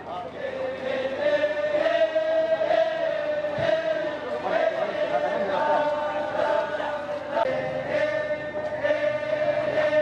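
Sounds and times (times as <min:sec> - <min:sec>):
murmur of speech: 0:00.0 - 0:10.0
voices chanting a held note: 0:00.4 - 0:10.0.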